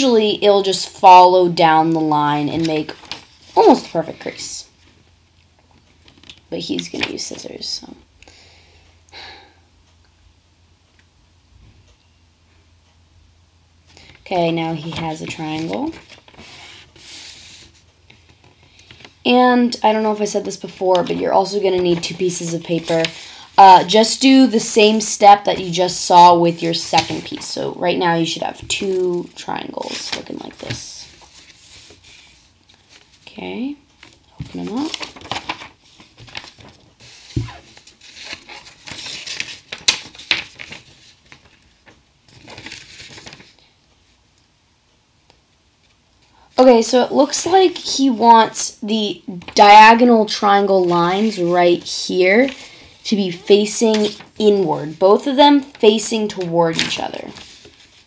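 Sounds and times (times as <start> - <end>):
paper rustling and crinkling: 2.0 - 4.9, 14.8 - 19.1, 20.1 - 33.2, 34.4 - 43.7, 49.4 - 58.0
sharp paper crackles: 34.5 - 43.6, 53.5 - 58.0.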